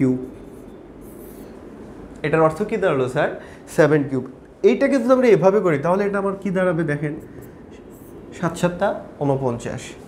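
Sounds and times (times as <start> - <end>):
stylus scratching on display board: 7.2 - 8.4.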